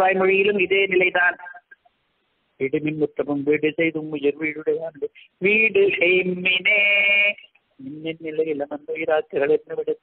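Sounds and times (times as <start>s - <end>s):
man speaking: 2.6s - 6.3s, 7.8s - 10.0s.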